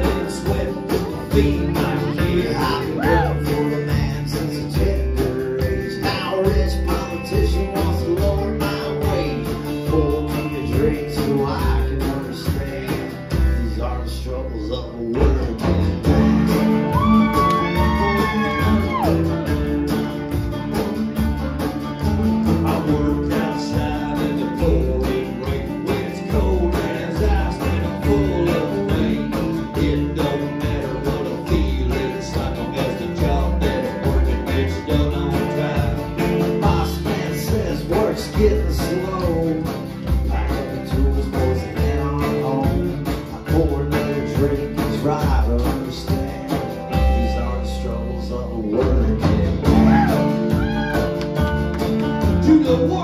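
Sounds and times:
steady drum beat: 0.0s - 14.1s, 15.1s - 53.0s
banjo: 0.0s - 53.0s
live country band playing: 0.0s - 53.0s
strummed acoustic guitar: 0.0s - 53.0s
upright bass: 0.0s - 53.0s.

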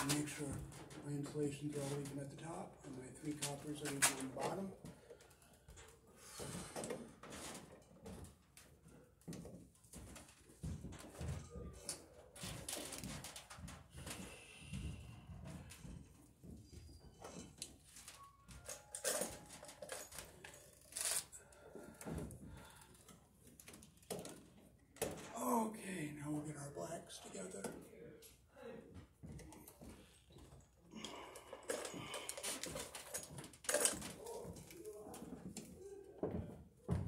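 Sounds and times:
electrical wires being handled: 0.0s - 4.9s, 9.2s - 14.2s, 31.6s - 36.4s.

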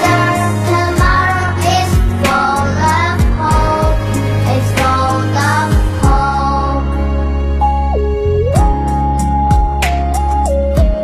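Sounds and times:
girl singing: 0.0s - 7.0s
backing track with bass: 0.0s - 11.0s.

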